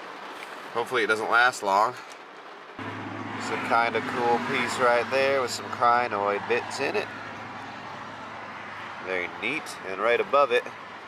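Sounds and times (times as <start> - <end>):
rain falling: 0.0 - 11.0.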